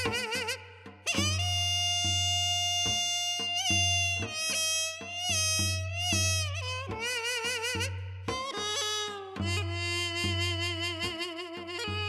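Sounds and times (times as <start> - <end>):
drum strokes: 0.0 - 12.0.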